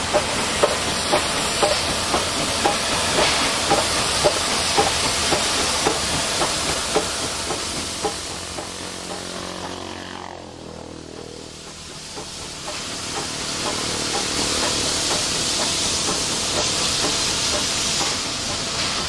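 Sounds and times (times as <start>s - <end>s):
steam hissing: 0.0s - 19.0s
steam locomotive rolling past: 0.0s - 19.0s.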